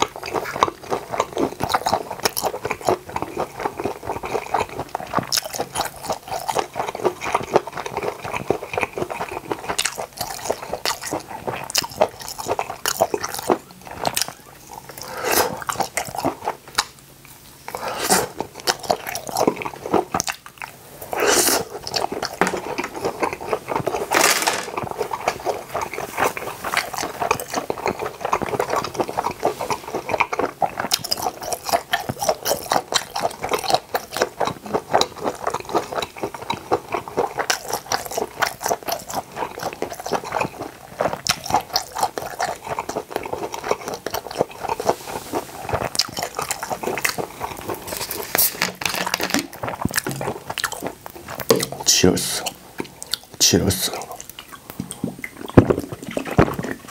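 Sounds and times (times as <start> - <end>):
close chewing clicks: 0.0 - 56.9.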